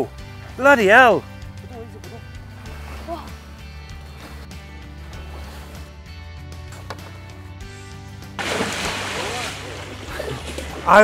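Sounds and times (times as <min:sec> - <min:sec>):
background music with low notes: 0:00.0 - 0:11.0
loud splash of churning water: 0:08.4 - 0:11.0.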